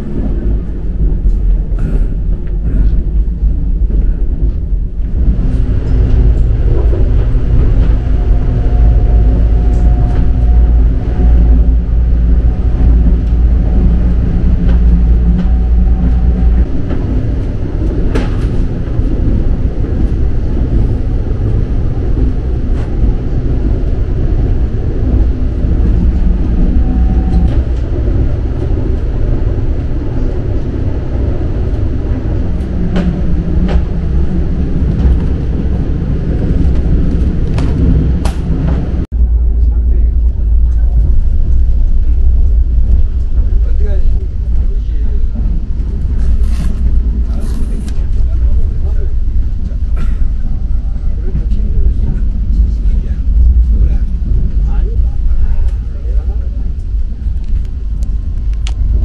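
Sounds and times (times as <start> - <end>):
electric train rumble: 0.0 - 59.0.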